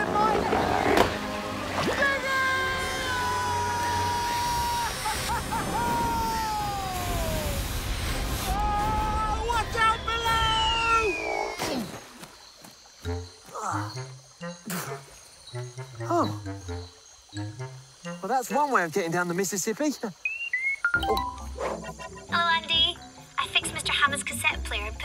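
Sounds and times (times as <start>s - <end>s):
background music: 0.0s - 11.0s, 13.0s - 19.0s, 20.8s - 25.0s
sloshing water: 0.1s - 2.5s
man screaming: 2.2s - 7.6s, 8.5s - 11.1s.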